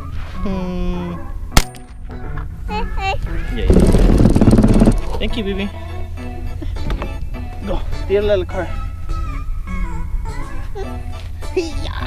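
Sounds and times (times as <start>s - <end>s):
rifle shot: 1.6s - 1.9s, 3.7s - 5.1s
loud rough noise: 3.5s - 5.5s.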